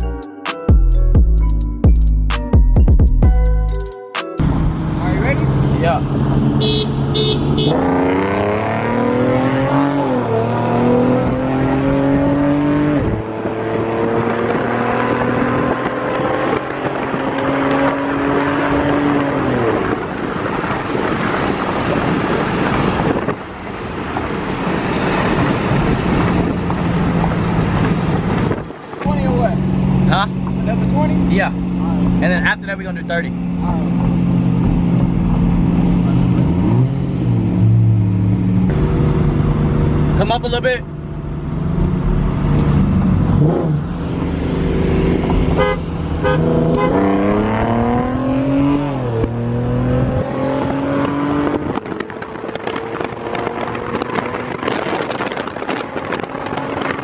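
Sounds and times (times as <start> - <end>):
road noise: 0.0 - 57.0
car engine accelerating: 4.4 - 57.0.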